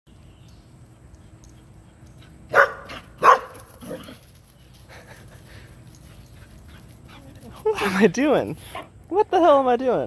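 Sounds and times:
dog barking excitedly: 0:02.5 - 0:04.1.

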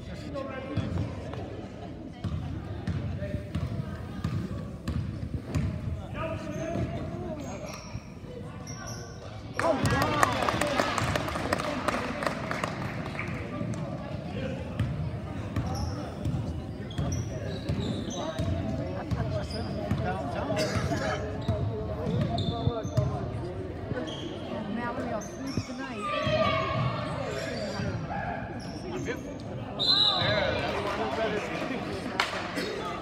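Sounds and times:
sneakers squeaking: 0:02.2 - 0:10.1, 0:13.2 - 0:30.6.

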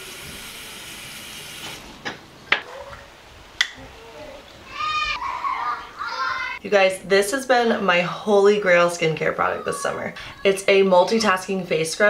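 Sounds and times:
sink tap running: 0:00.0 - 0:01.9.

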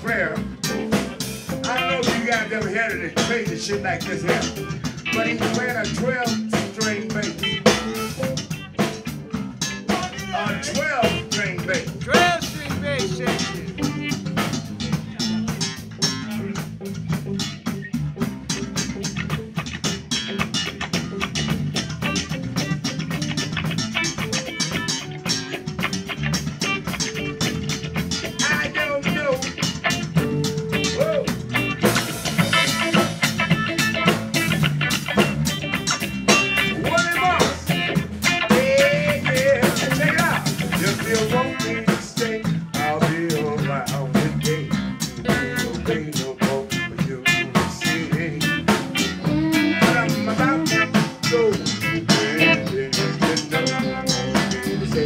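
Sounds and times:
bending electric guitar lead: 0:00.0 - 0:55.0
drum kit steady beat: 0:00.0 - 0:55.0
electric bass: 0:00.0 - 0:55.0.

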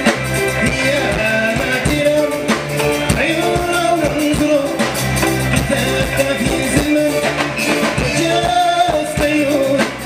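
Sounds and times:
bass guitar: 0:00.0 - 0:10.0
drum kit: 0:00.0 - 0:10.0
electric guitars: 0:00.0 - 0:10.0
person singing: 0:00.1 - 0:10.0.

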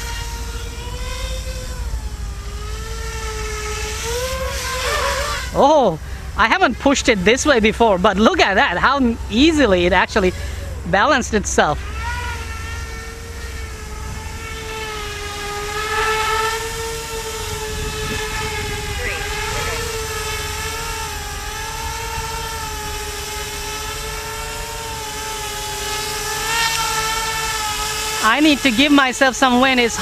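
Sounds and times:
drone motors and propellers whining: 0:00.0 - 0:30.0
low wind rumble: 0:00.0 - 0:30.0.

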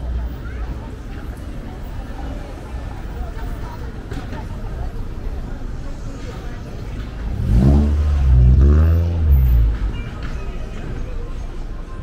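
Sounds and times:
street background: 0:00.0 - 0:12.0
car engine accelerating: 0:07.1 - 0:10.2.

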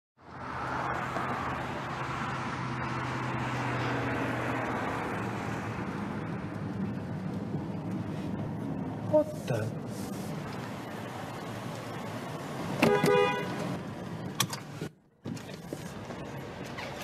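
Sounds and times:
road and traffic noise: 0:00.2 - 0:17.0
car engine hum: 0:00.3 - 0:17.0.

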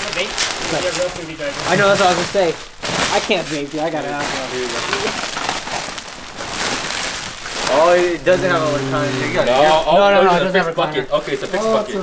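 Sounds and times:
plastic bag and bubble wrap crinkling: 0:00.0 - 0:12.0.

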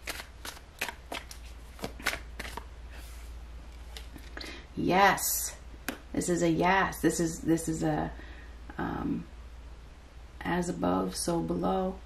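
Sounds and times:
cards being shuffled: 0:00.0 - 0:04.4.

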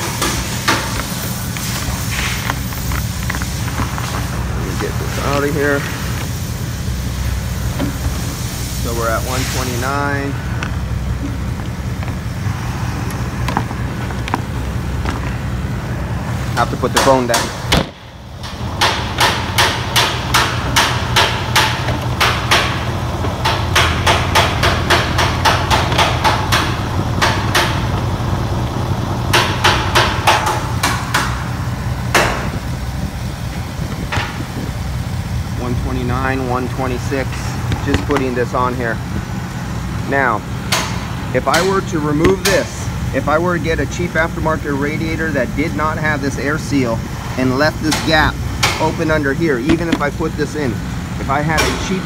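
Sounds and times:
hiss of airflow: 0:00.0 - 0:16.7
car engine idling: 0:00.0 - 0:52.0
loud sharp knocks: 0:16.8 - 0:28.2, 0:29.3 - 0:32.6, 0:47.8 - 0:50.3.

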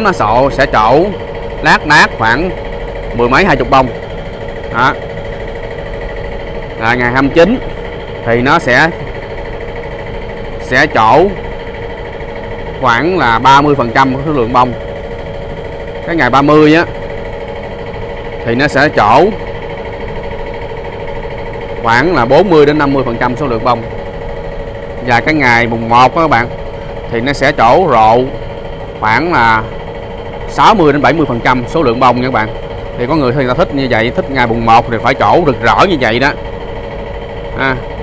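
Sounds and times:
steady motor hum: 0:00.0 - 0:38.0.

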